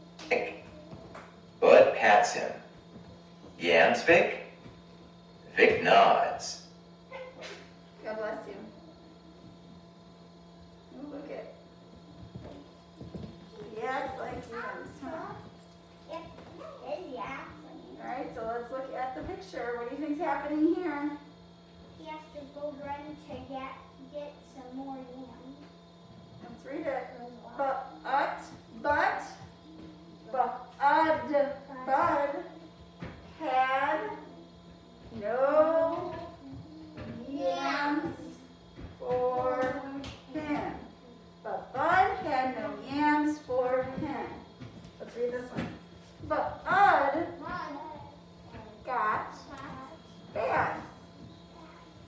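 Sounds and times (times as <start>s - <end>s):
faint steady hum: 0.0s - 52.0s.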